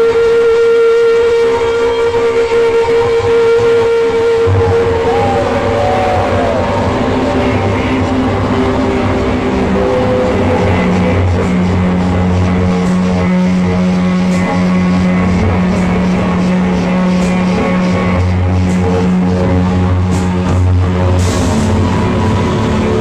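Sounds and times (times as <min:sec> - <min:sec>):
low held note: 0:04.2 - 0:08.8
loud droning noise-rock band: 0:04.4 - 0:23.0.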